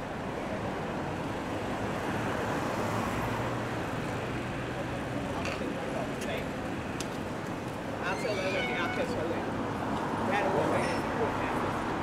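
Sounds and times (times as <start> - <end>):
traffic hum: 0.0 - 12.0
indistinct voices of passers-by: 3.3 - 12.0.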